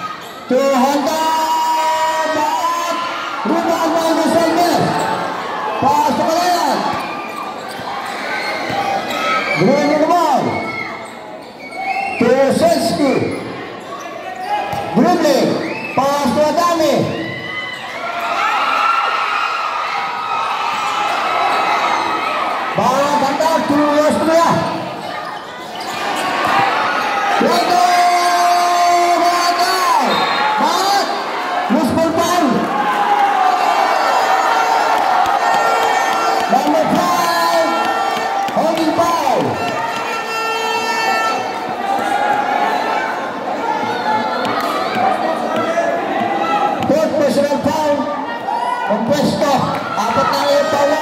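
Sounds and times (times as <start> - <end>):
crowd din: 19.6 - 51.0
people shouting: 32.4 - 47.1.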